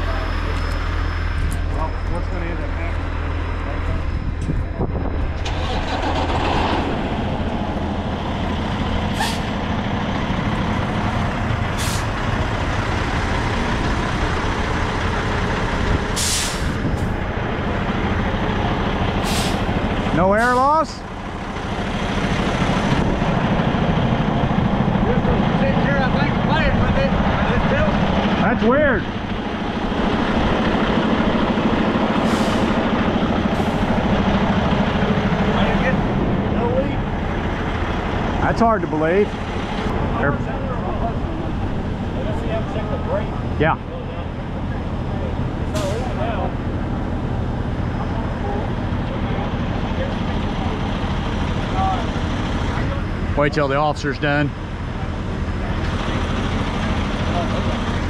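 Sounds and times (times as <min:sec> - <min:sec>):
diesel truck engine idling: 0:00.0 - 0:58.0
air brake hisses: 0:09.1 - 0:09.6, 0:11.8 - 0:12.1, 0:16.2 - 0:16.8, 0:19.2 - 0:19.7, 0:32.2 - 0:32.8.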